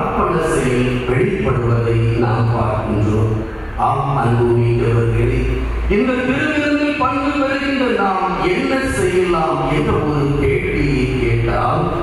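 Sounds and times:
voice chanting a prayer: 0.0 - 12.0.

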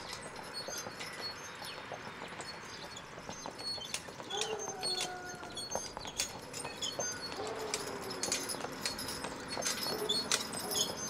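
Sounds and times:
horse hooves clip-clopping on asphalt: 0.0 - 11.0.

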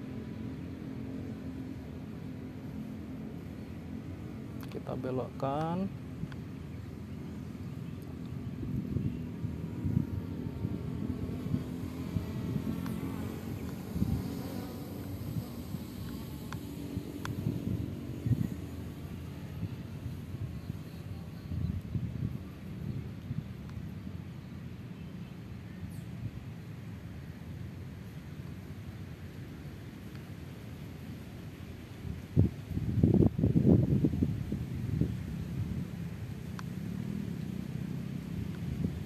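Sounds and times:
wind buffeting microphone: 5.9 - 24.3, 32.0 - 36.4, 38.0 - 39.0.

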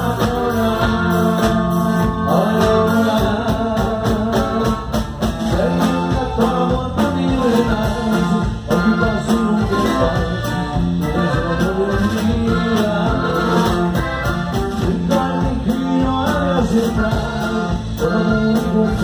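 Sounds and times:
live band with accordion and guitars: 0.0 - 19.0.

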